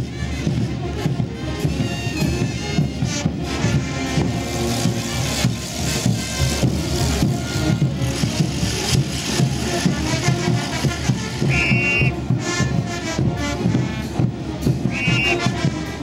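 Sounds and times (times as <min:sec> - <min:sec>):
brass band playing: 0:00.0 - 0:16.0
steady drum beat: 0:00.0 - 0:16.0.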